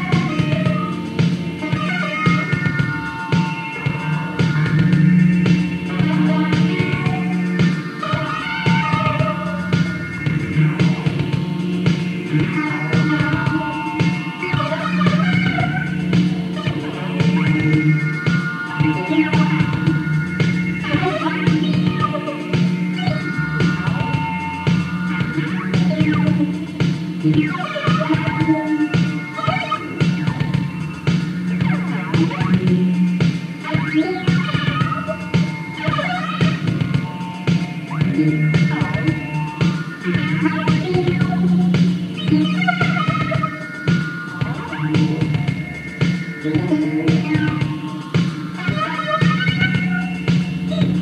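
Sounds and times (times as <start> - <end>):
low synthesizer drone: 0.0 - 51.0
repeating synth arpeggio: 0.0 - 51.0.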